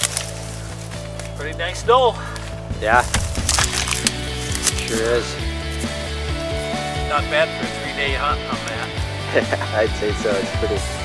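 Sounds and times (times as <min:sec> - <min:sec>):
dry reeds crackling and snapping: 0:00.0 - 0:06.2
background music: 0:00.0 - 0:11.0.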